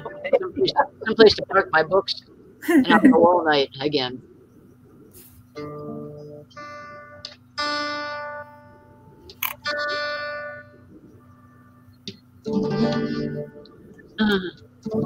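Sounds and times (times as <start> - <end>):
acoustic guitar plucked notes: 5.6 - 15.0.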